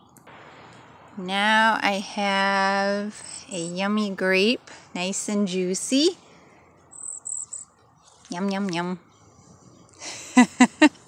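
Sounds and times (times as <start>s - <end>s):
fledgling high begging calls: 6.8s - 8.3s.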